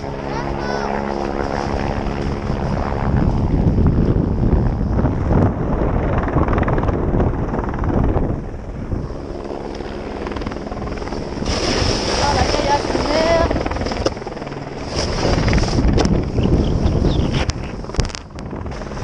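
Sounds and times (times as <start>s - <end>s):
steady hum: 0.0s - 19.0s
wind buffeting microphone: 0.0s - 19.0s
snowboard scraping on snow: 11.4s - 13.4s, 14.8s - 15.9s.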